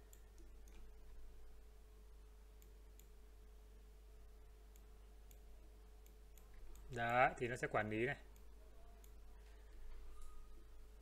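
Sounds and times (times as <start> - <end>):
faint steady hum: 0.0 - 11.0
person speaking: 6.8 - 9.1.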